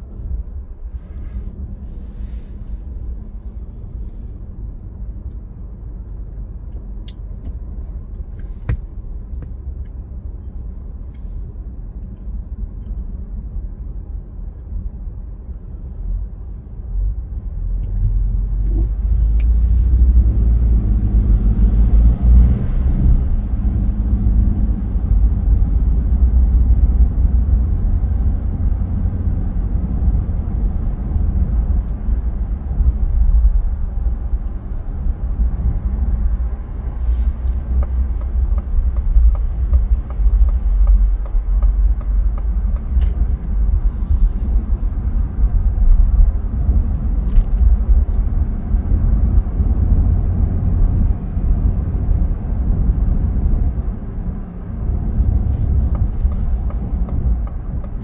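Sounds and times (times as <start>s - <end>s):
car driving road rumble: 0.0s - 58.0s.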